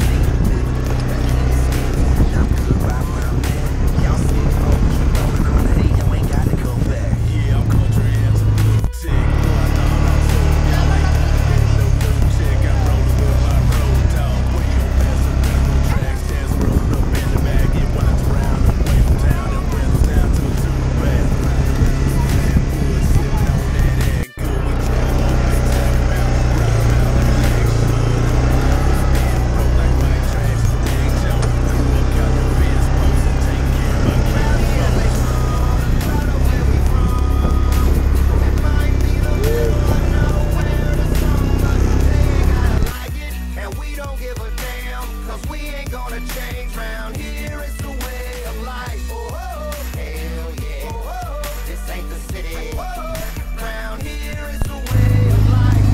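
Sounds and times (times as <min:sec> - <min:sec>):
vehicle engine drone: 0:00.0 - 0:43.2, 0:52.0 - 0:55.9
rough road and tyre noise: 0:00.0 - 0:44.0, 0:51.4 - 0:55.9.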